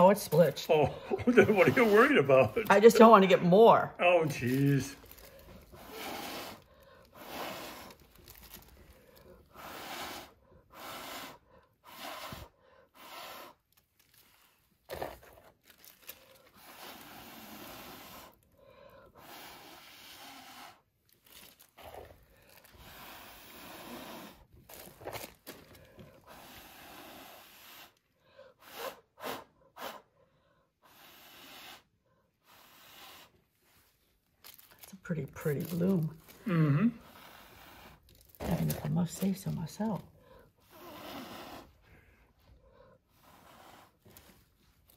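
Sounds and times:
faint puffs of breath: 25.7 - 33.9.

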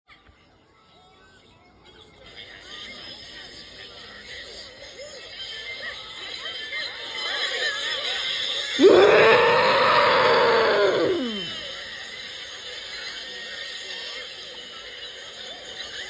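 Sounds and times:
cartoon voice high-pitched yell: 8.8 - 11.6
jumble of cartoon soundtracks: 8.8 - 11.7.

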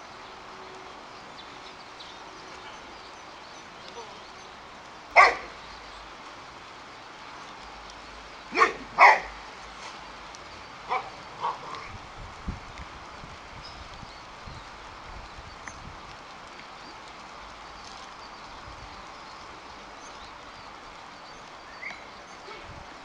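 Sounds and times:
dog barking: 5.2 - 5.5, 8.5 - 9.4, 10.9 - 11.7.

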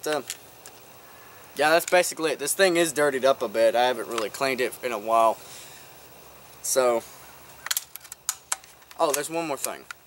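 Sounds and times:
air rifle clicking: 7.6 - 10.0.

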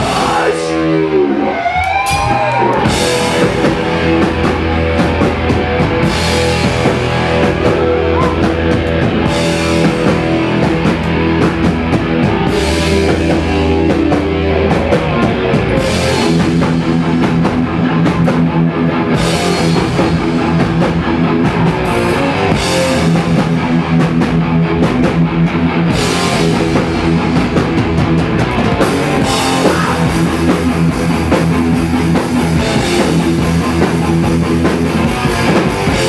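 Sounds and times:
bass guitar: 0.0 - 36.0
distorted electric guitars: 0.0 - 36.0
drum kit: 0.0 - 36.0.

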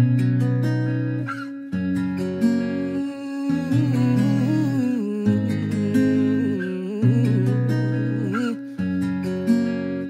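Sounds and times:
acoustic guitar chords: 0.0 - 10.0
wavering wordless melody: 1.2 - 10.0.

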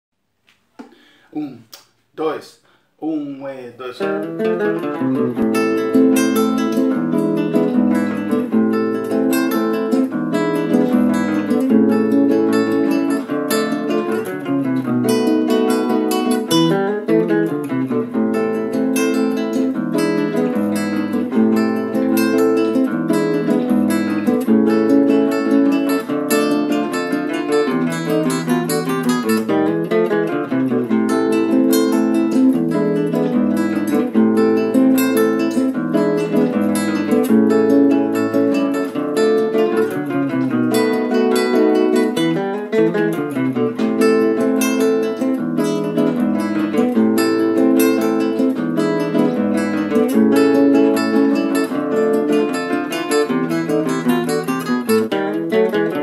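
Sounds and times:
acoustic guitars duet: 3.8 - 56.0.

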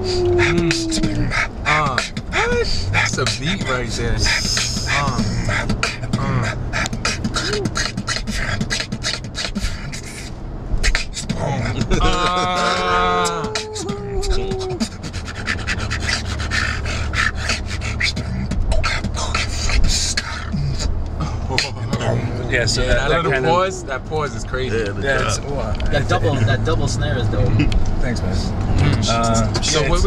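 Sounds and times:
man humming: 0.0 - 10.3, 10.9 - 26.4
man beatboxing: 0.0 - 26.4, 28.6 - 30.0
car cabin road rumble: 0.0 - 30.0.

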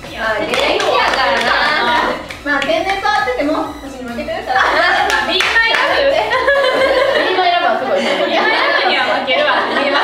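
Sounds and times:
women laughing and talking: 0.3 - 10.0
hand clapping: 0.4 - 2.8, 5.0 - 6.0.

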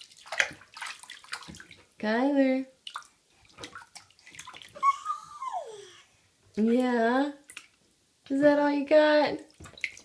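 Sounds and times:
bath water splashing: 0.0 - 2.0, 2.8 - 6.0, 6.6 - 7.8, 9.4 - 10.0
infant squealing: 4.8 - 6.1.

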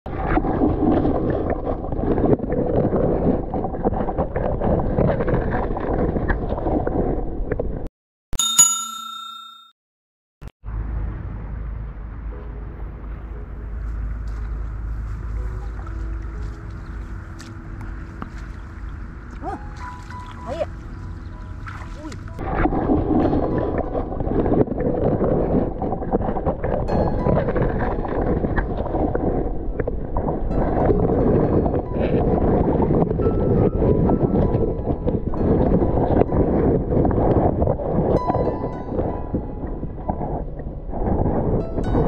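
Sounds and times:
bright bell chime: 8.4 - 9.7.

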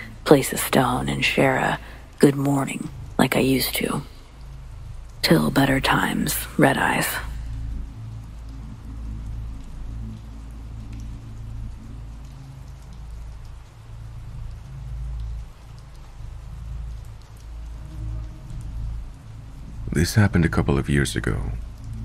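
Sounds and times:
rain: 0.0 - 22.0
low rumble: 4.0 - 22.0.

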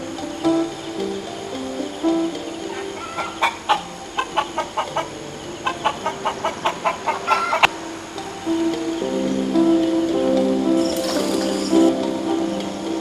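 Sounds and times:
background music: 0.0 - 13.0
hen clucking and squawking: 2.7 - 7.7.

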